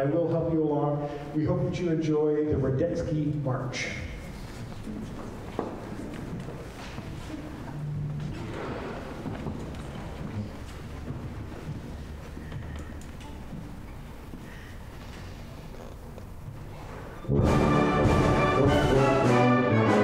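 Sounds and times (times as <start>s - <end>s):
audience rustling and shuffling: 0.3s - 18.3s.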